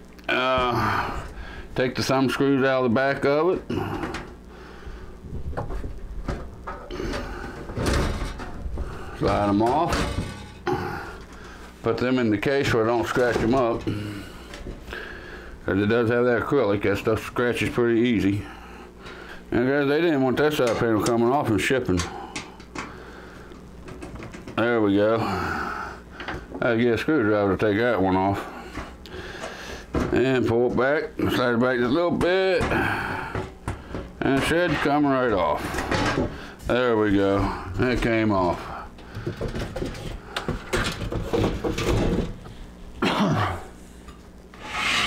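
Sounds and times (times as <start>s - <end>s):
faint low hum: 0.0s - 45.0s
person coughing: 43.0s - 43.7s.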